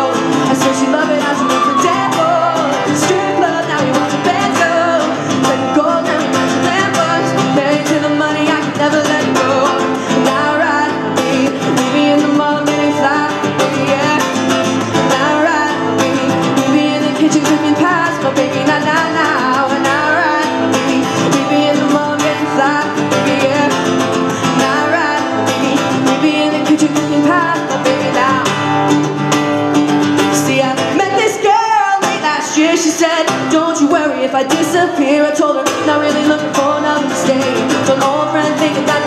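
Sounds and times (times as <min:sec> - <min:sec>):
acoustic guitar strummed: 0:00.0 - 0:39.0
woman singing: 0:00.0 - 0:39.0.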